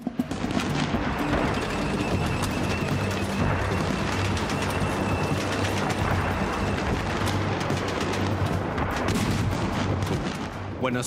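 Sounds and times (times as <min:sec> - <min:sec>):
gunfire shots and automatic bursts: 0:00.1 - 0:10.7
steady low rumble: 0:00.3 - 0:10.9.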